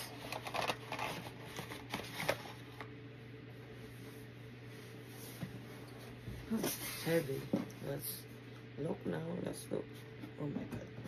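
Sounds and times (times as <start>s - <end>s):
cardboard packaging rustling: 0.0s - 2.9s.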